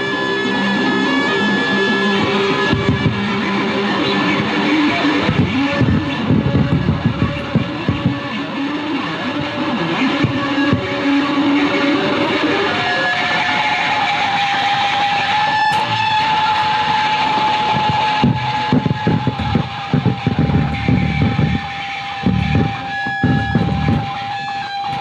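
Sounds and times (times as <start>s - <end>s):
noisy electronic wash: 15.2s - 25.0s
high steady tone: 17.4s - 25.0s
low rumbling pulses: 17.8s - 24.3s.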